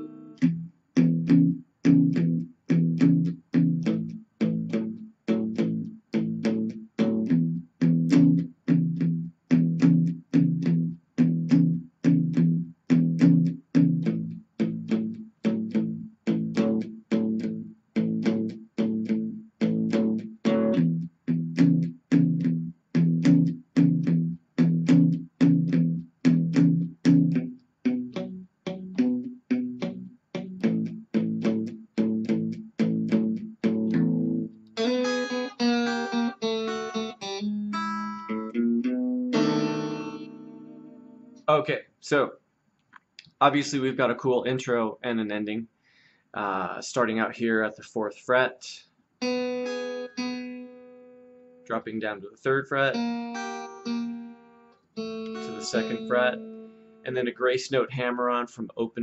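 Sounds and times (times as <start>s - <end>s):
electric guitar blues shuffle: 0.0s - 41.4s, 55.0s - 57.2s
guitar chord ringing: 0.0s - 41.5s, 49.2s - 51.7s, 52.9s - 57.2s.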